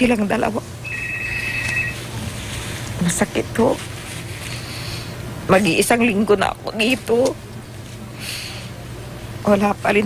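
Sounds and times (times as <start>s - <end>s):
low steady hum: 0.0s - 10.0s
electronic telephone ring: 0.9s - 2.0s.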